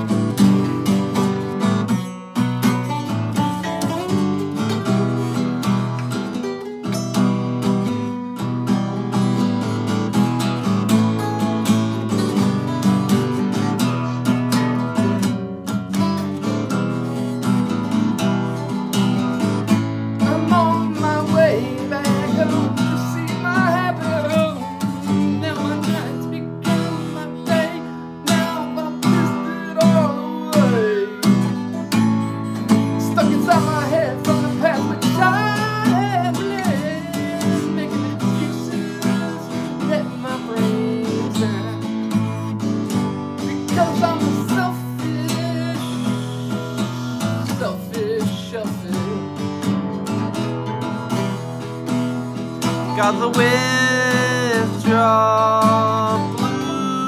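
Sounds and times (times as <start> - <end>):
picked guitar melody: 0.0 - 57.0
strummed rhythm guitar: 0.0 - 57.0.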